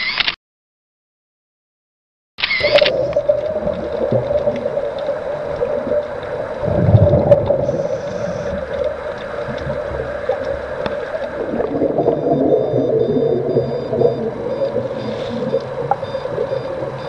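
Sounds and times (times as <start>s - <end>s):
crackling bubbles: 2.6s - 17.0s
muffled underwater rumble: 2.6s - 17.0s.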